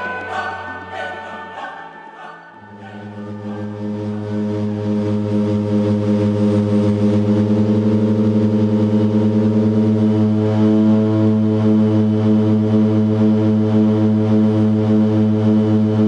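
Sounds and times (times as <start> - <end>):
turboprop engines droning in cabin: 2.6 - 16.0.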